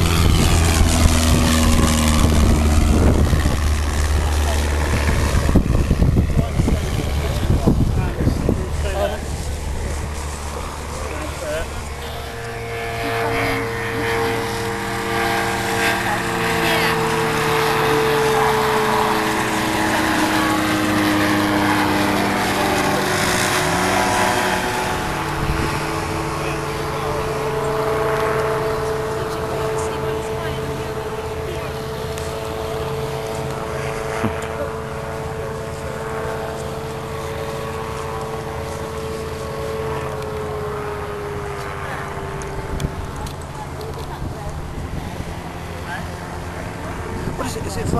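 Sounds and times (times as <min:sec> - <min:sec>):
aircraft propellers droning: 0:00.0 - 0:47.9.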